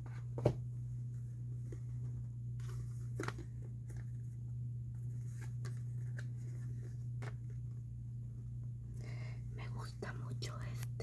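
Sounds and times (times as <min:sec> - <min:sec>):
steady low hum: 0:00.0 - 0:11.0
woman whispering: 0:09.5 - 0:11.0.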